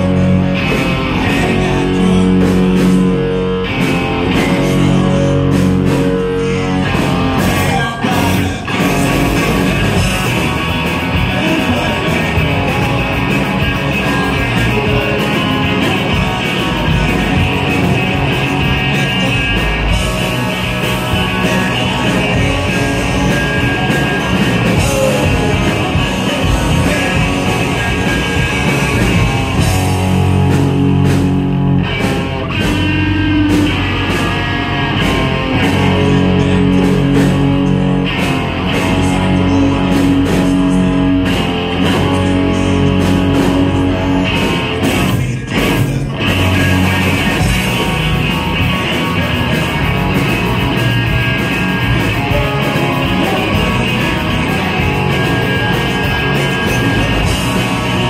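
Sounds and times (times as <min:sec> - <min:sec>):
person singing: 0:00.0 - 0:30.5, 0:32.5 - 0:58.0
live ska punk band: 0:00.0 - 0:58.0.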